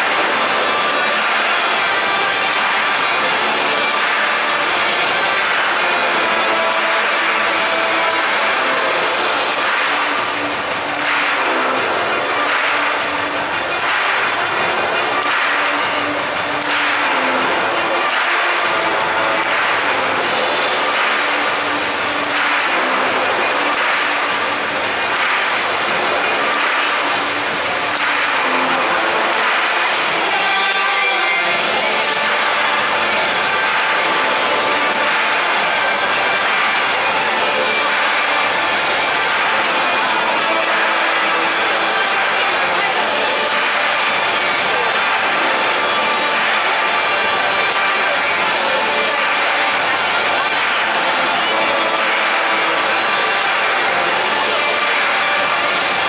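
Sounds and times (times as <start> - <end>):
music with steady beat over pa: 0.0 - 56.0.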